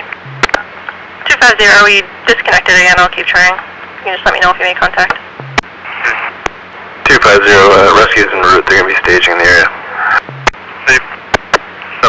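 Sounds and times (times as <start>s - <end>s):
low hum: 0.0s - 0.9s, 5.2s - 6.6s, 9.9s - 10.6s.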